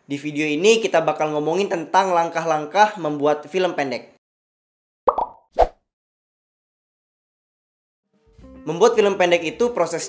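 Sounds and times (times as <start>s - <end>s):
pop sound effects: 5.1s - 5.8s.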